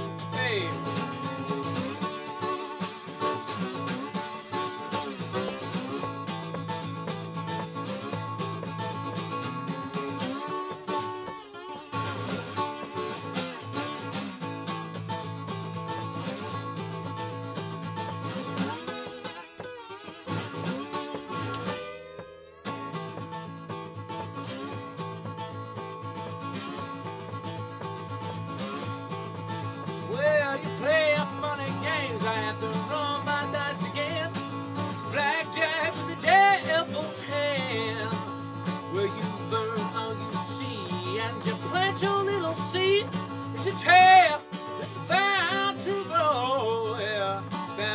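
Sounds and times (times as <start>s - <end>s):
slide acoustic guitar: 0.0s - 47.9s.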